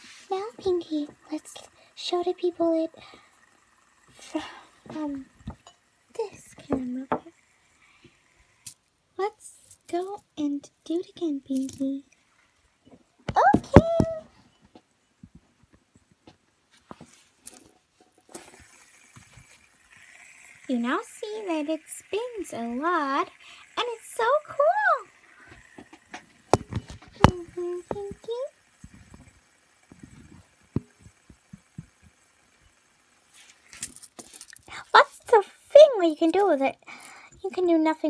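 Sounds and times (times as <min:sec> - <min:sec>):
fidget spinner spinning: 0:00.0 - 0:15.3, 0:16.8 - 0:38.0.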